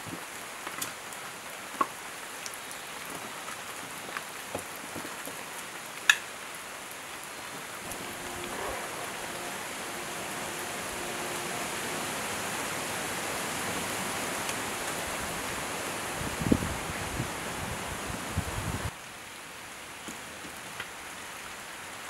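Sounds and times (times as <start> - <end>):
firewood burning with crackles: 0.0 - 19.0.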